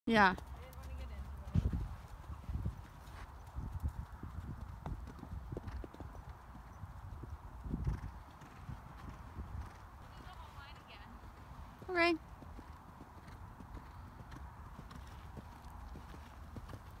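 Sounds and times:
horse hoofbeats on dirt: 0.1s - 17.0s.

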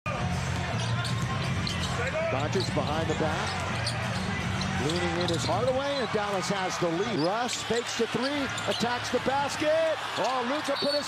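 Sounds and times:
arena crowd murmur: 0.1s - 11.0s.

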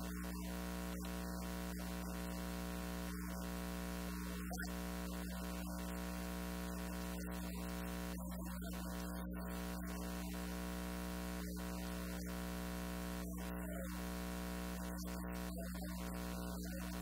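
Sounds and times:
electrical hum and buzz: 0.0s - 17.0s.

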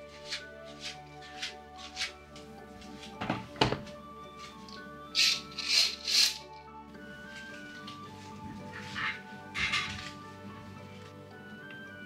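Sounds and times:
curtain swishing: 0.0s - 3.2s, 4.3s - 11.0s
background music: 0.0s - 12.0s
objects thunking on wooden desk: 3.2s - 3.9s.

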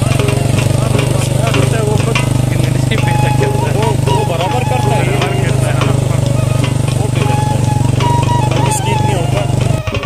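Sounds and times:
loud low drone: 0.0s - 10.0s
wavering melodic song: 0.0s - 10.0s.

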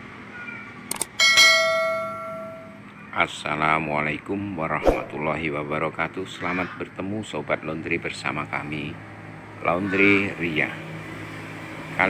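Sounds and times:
bright bell ding: 1.2s - 2.8s.

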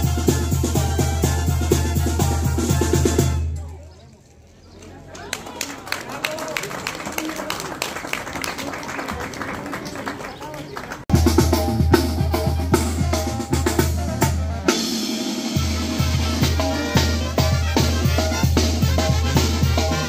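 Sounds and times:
snare and bass drum beat: 0.0s - 3.4s, 11.1s - 20.0s
brass band playing: 0.0s - 3.6s, 11.1s - 20.0s
crowd voices: 0.0s - 20.0s
sousaphone bass line: 11.1s - 14.7s.

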